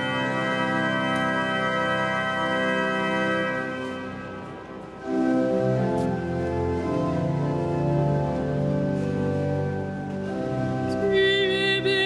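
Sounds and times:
pipe organ chord: 0.0 - 12.0.

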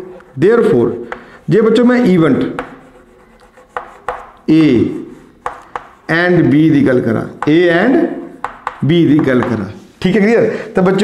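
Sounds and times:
chalk tapping and scraping on blackboard: 0.0 - 9.9.

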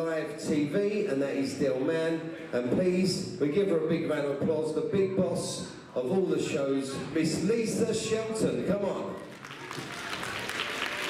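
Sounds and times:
audience applauding: 9.2 - 11.0.

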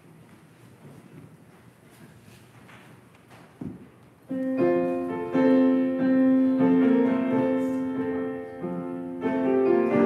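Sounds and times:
keyboard playing sustained chords: 4.3 - 10.0.

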